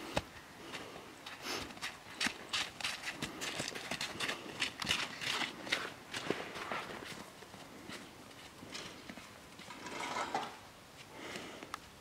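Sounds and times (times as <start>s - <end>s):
footsteps crunching on snow: 0.1s - 9.7s.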